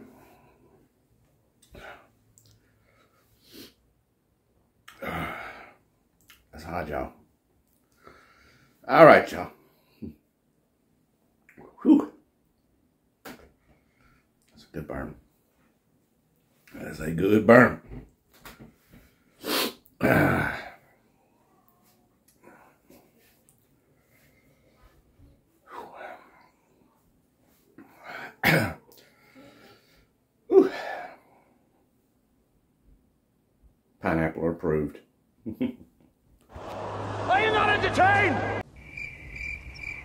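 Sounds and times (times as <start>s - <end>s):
man's sharp burst of breath: 19.4s - 20.7s
rising and falling cries: 36.5s - 40.0s
crickets chirping: 38.6s - 40.0s.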